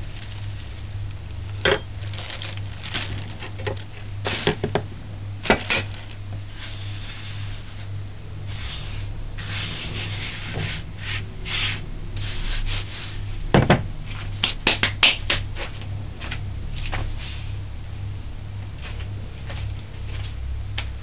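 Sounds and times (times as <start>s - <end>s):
steady low hum: 0.0s - 21.0s
hands rubbing flour on board: 8.5s - 13.3s.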